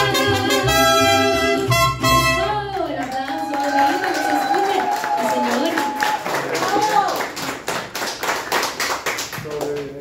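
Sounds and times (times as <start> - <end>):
people clapping: 2.7 - 10.0.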